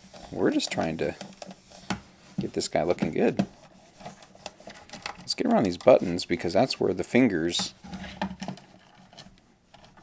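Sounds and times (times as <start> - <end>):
paper towel wiping plastic case: 0.0 - 8.2.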